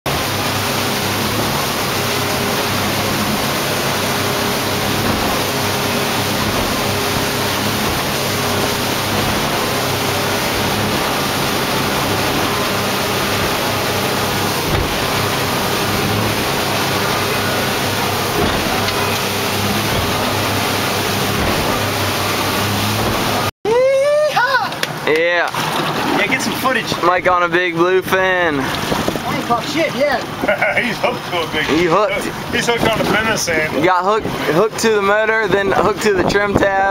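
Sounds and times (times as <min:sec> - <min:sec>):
rush of wind and water: 0:00.0 - 0:23.5, 0:24.4 - 0:36.9
low boat engine drone: 0:00.0 - 0:36.9.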